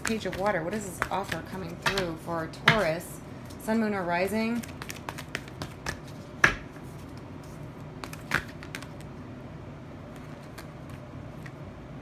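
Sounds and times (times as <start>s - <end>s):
cards clicking and tapping: 0.0s - 2.9s, 4.6s - 6.8s, 8.0s - 9.1s
steady low hum: 0.0s - 12.0s.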